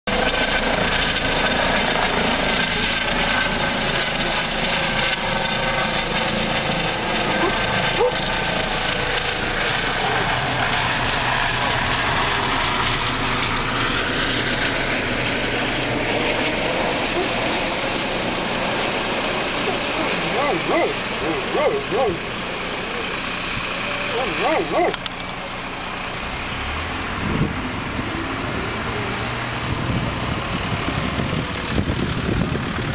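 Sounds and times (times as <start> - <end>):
helicopter flying overhead: 0.1 - 32.9.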